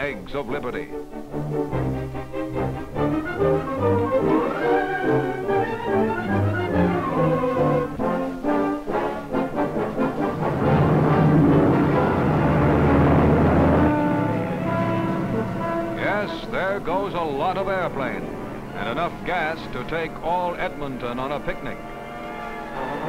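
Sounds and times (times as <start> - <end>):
orchestral music led by brass: 0.0 - 23.0
deep rumble: 10.2 - 21.5.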